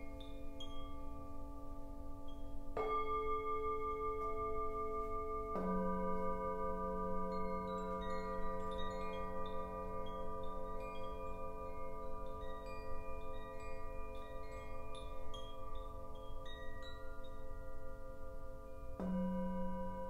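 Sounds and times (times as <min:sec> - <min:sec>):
singing bowl ringing: 0:00.0 - 0:20.0
wind chime tinkling: 0:00.0 - 0:20.0.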